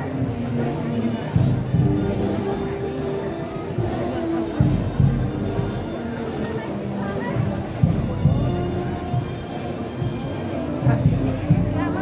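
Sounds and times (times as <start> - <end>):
band music with held notes: 0.0 - 12.0
people talking: 0.0 - 12.0.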